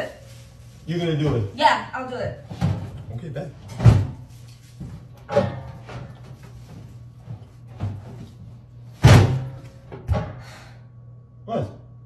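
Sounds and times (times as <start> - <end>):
knocks from metal trash can: 9.0 - 10.4.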